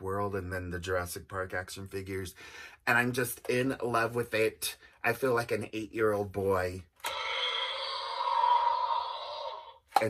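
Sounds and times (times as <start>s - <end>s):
toy dinosaur electronic roar: 7.0s - 9.9s.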